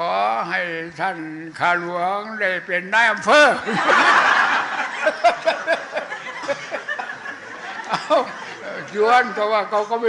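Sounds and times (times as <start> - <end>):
audience laughing: 3.6 - 9.0.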